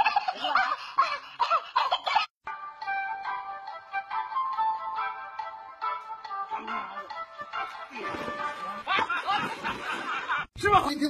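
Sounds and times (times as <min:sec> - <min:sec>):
background music: 0:02.4 - 0:10.2.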